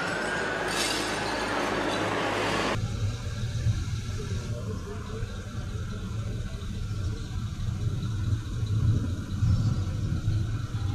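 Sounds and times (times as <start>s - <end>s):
vehicle engines idling: 0.0s - 10.9s.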